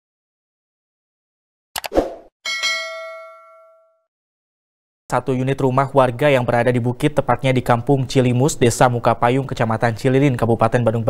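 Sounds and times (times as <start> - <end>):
bell ding: 2.5 - 4.1.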